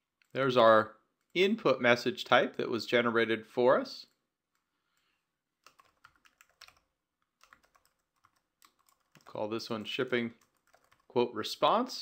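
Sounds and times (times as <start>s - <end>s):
faint computer keyboard typing: 4.0s - 11.1s.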